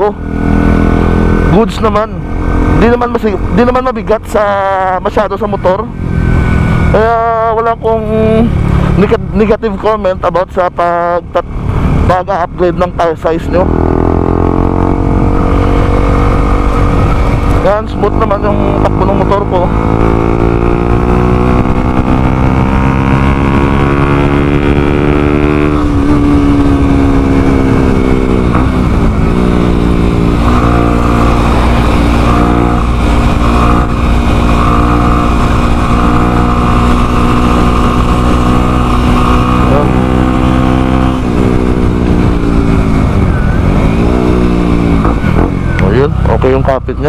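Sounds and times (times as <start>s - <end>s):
motorcycle engine running: 0.0s - 47.0s.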